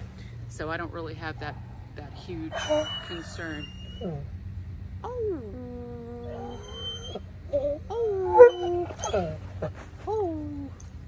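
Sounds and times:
dog whining and howling: 2.5s - 4.3s, 5.0s - 11.0s.

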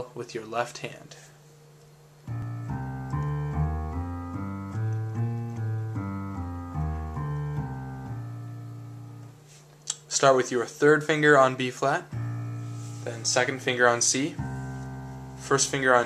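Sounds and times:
piano scale: 2.2s - 9.6s, 10.9s - 16.0s.

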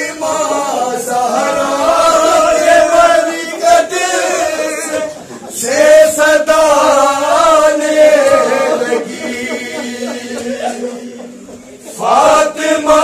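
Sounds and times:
men chanting a lament: 0.0s - 13.0s.

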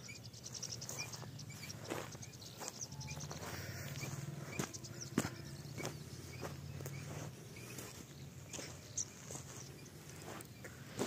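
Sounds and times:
footsteps on sandy ground: 0.0s - 11.0s.

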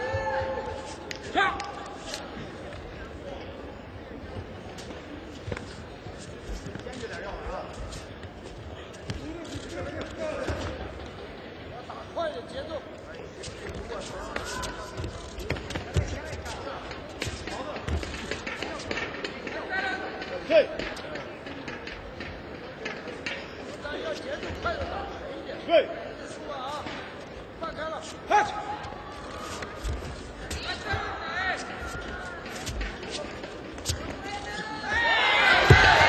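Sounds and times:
crowd voices: 0.0s - 36.0s
feet thudding on mats: 35.6s - 36.0s.

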